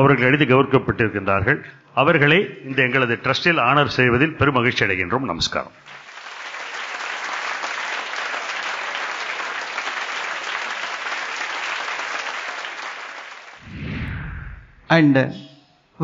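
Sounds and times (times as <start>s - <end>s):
audience applauding: 5.8s - 13.6s
low swell: 13.6s - 14.9s.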